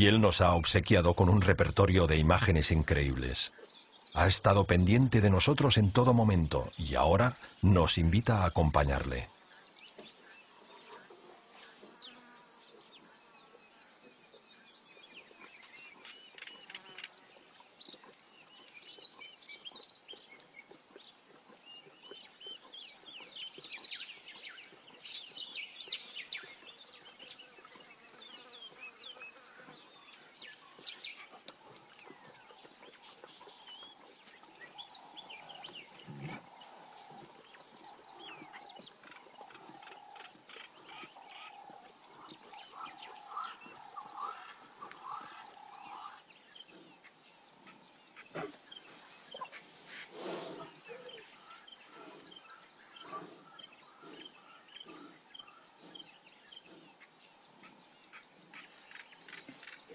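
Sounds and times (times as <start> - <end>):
birds chirping and calling: 0.0 - 59.9.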